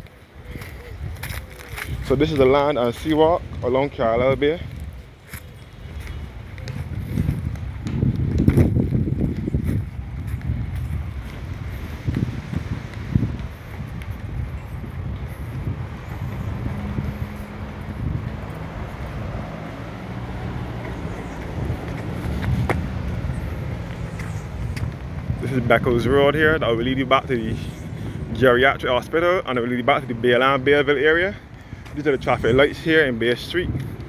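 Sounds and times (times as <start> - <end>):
road traffic: 0.0 - 34.0
wind buffeting microphone: 0.0 - 34.0.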